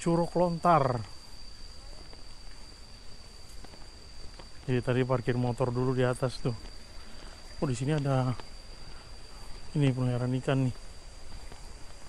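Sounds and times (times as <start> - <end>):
insect trilling: 0.0 - 12.0
quiet outdoor background noise: 0.0 - 12.0.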